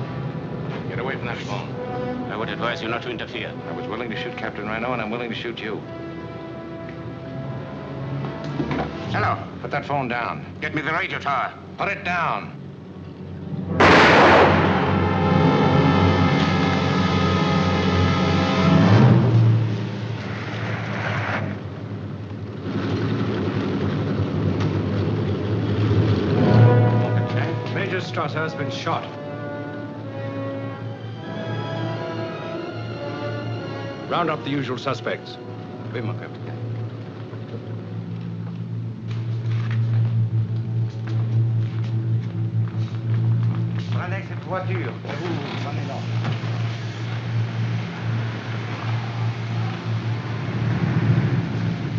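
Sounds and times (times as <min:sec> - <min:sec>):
orchestral film score: 0:00.0 - 0:51.9
car engines running: 0:12.6 - 0:30.6, 0:33.0 - 0:51.9
pistol shot: 0:13.8 - 0:15.4.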